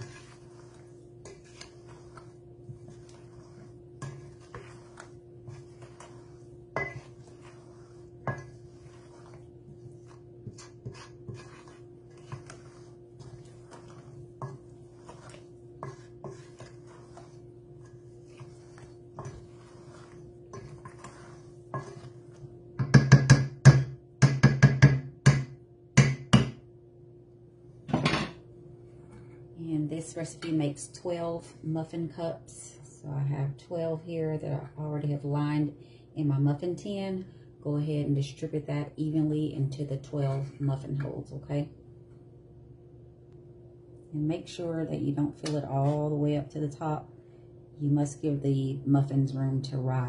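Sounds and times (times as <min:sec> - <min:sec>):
spatula scraping a metal bowl: 0:00.0 - 0:23.6, 0:45.4 - 0:46.3
steady low hum: 0:00.0 - 0:50.0.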